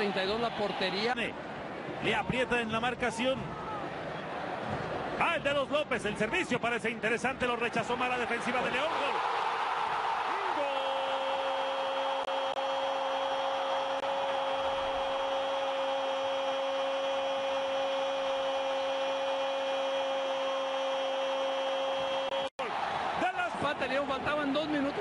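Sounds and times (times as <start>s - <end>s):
stadium crowd noise: 0.0s - 25.0s.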